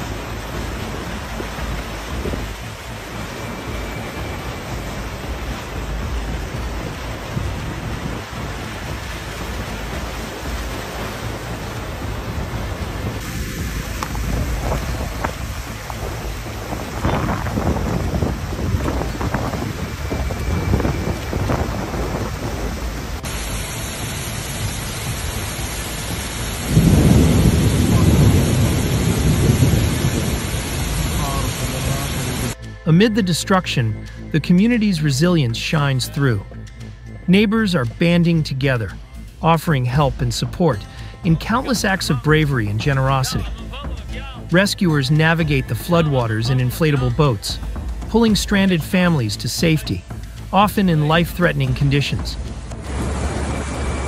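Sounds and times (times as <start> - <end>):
heavy rain: 0.0 - 32.6, 38.8 - 54.0
cascading water: 0.0 - 54.0
rushing floodwater: 0.0 - 54.0.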